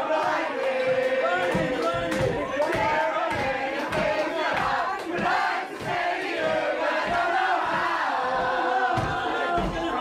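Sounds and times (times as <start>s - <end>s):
crowd singing and shouting: 0.0s - 10.0s.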